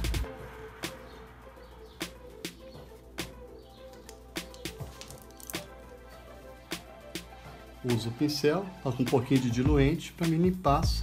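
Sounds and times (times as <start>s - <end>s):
soft instrumental music: 0.0s - 11.0s.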